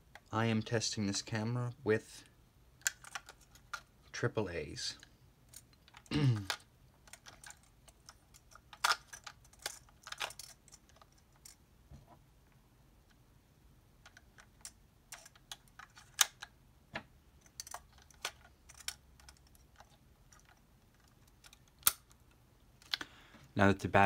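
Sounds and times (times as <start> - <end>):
batteries clicking into compartment: 2.8 - 3.9, 5.5 - 11.6, 14.0 - 16.5, 17.4 - 23.0.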